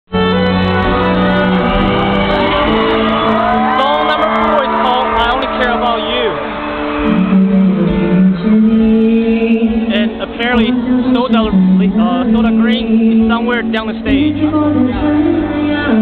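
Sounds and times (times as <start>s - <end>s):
fans screaming and whooping: 0.9s - 8.4s.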